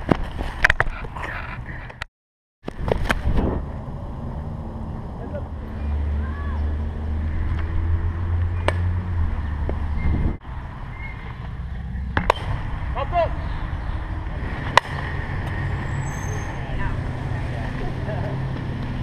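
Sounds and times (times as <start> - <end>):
bat hitting ball crack: 8.6 - 8.9, 12.2 - 12.6, 14.7 - 15.0.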